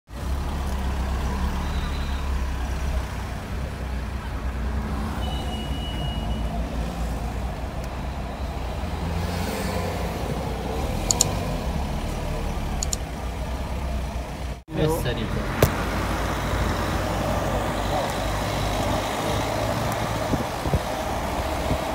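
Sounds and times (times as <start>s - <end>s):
car engine low rumble: 0.1s - 21.9s
road noise inside car: 0.1s - 21.9s
faint sharp clicks: 12.8s - 13.0s.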